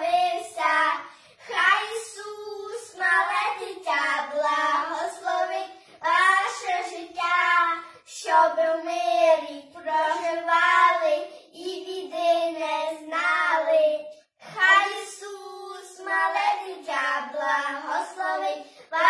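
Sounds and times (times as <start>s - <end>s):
children singing a carol: 0.0s - 19.0s.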